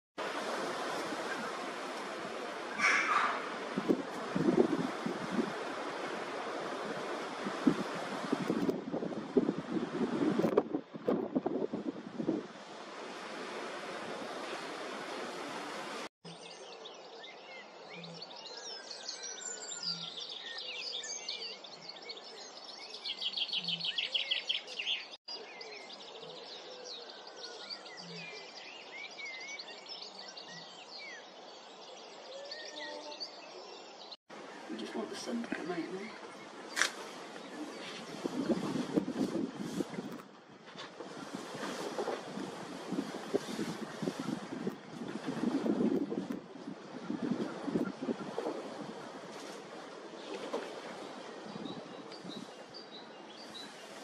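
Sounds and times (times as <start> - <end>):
wind buffeting microphone: 0.2 - 16.0, 34.7 - 54.0
small birds chirping: 51.0 - 54.0.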